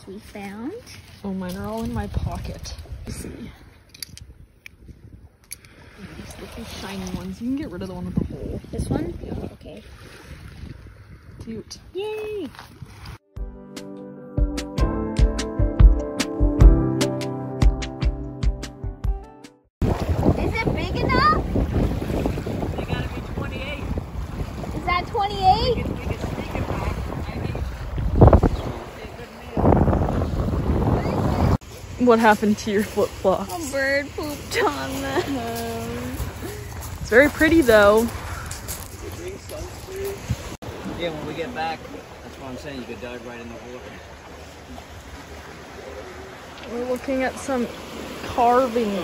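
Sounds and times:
wind buffeting microphone: 0:01.6 - 0:13.2, 0:19.8 - 0:42.1.

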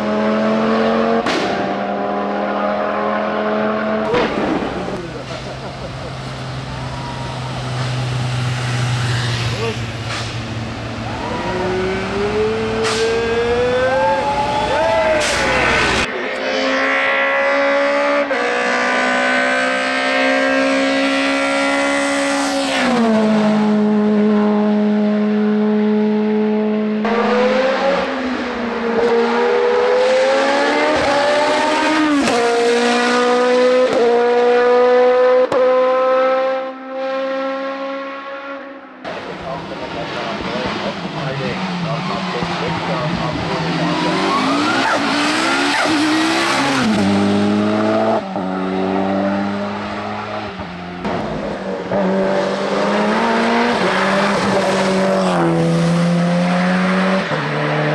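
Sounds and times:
racing car engines revving: 0:00.0 - 0:57.9.

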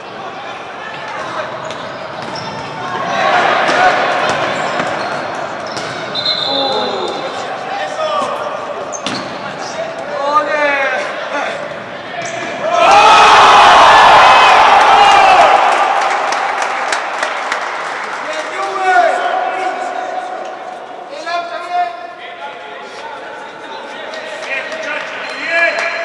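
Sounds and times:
players shouting: 0:00.0 - 0:23.6
crowd shouting and cheering: 0:00.0 - 0:26.0
ball bouncing on indoor court: 0:00.9 - 0:07.2, 0:08.9 - 0:09.5.

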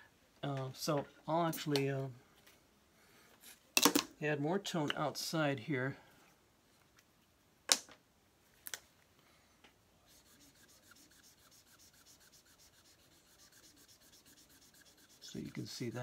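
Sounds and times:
marker scratching on paper: 0:10.1 - 0:16.0.

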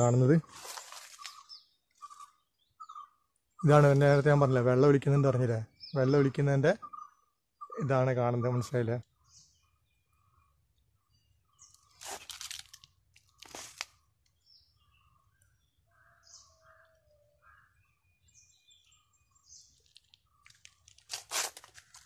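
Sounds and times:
faint bird chirps: 0:00.0 - 0:04.4, 0:05.0 - 0:20.8
footsteps on dry leaves: 0:00.4 - 0:01.5, 0:11.9 - 0:13.9, 0:20.6 - 0:22.0.

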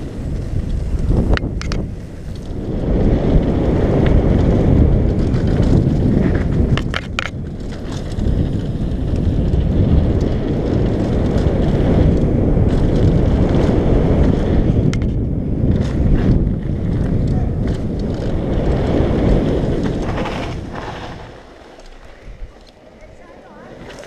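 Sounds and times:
bike tyres rumbling on gravel: 0:00.0 - 0:24.0
wind buffeting microphone: 0:00.0 - 0:24.0.

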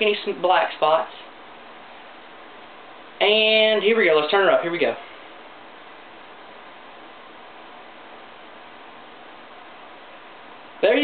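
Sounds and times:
room noise hiss: 0:00.0 - 0:11.0.

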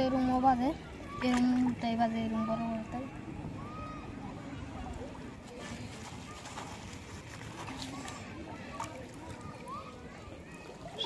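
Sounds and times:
small water splashes: 0:00.0 - 0:11.0.

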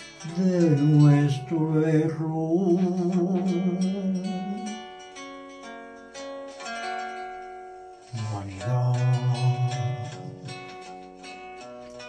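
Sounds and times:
plucked acoustic guitar run: 0:00.0 - 0:12.0.

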